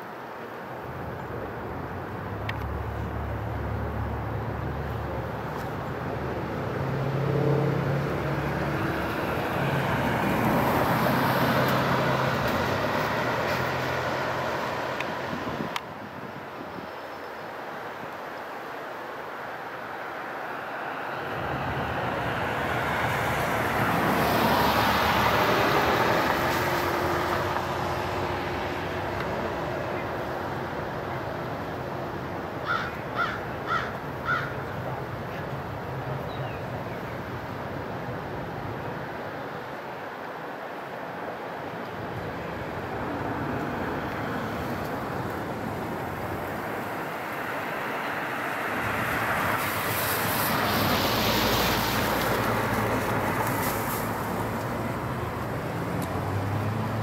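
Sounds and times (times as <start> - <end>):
cars passing on road: 0.0 - 57.0
crow cawing: 32.6 - 34.6.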